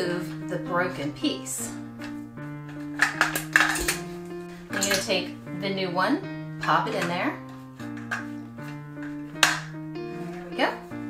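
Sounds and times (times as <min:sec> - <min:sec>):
background guitar music: 0:00.0 - 0:11.0.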